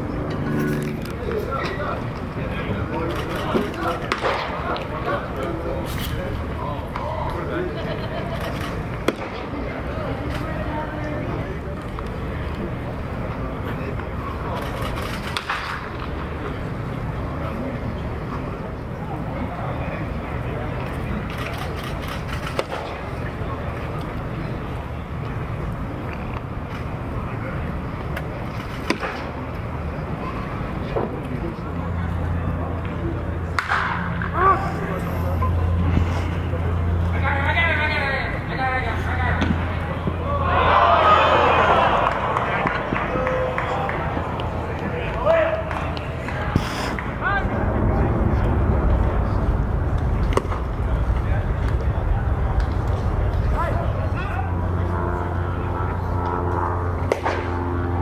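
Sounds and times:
distant indistinct voices: 0:00.0 - 0:58.0
low crowd rumble: 0:00.0 - 0:58.0
low rumble: 0:40.1 - 0:58.0.

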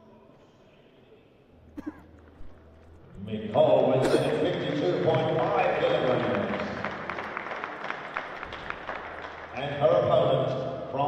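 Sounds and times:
people clapping: 0:02.1 - 0:10.7.

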